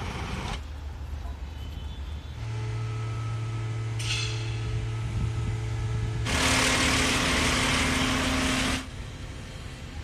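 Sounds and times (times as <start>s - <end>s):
machinery low hum: 2.4s - 7.5s.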